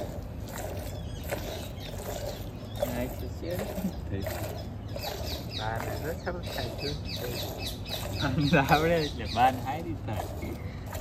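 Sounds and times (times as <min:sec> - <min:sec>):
milk squirting into pail: 0:00.0 - 0:11.0.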